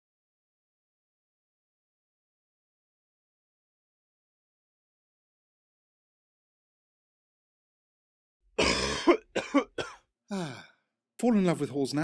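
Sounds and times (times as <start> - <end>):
cartoon voice coughing: 8.6 - 10.0.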